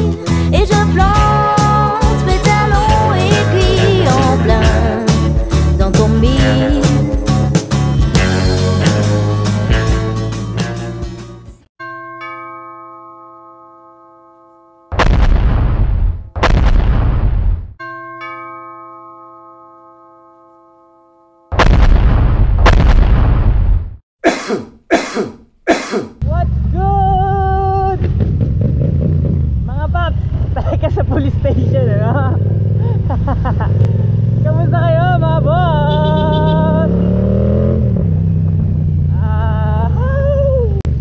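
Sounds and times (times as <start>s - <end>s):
ringing chime: 11.8s - 14.9s, 17.8s - 21.5s
heavy booms: 15.0s - 17.8s, 21.5s - 24.0s
motorcycle engine running: 26.2s - 40.3s.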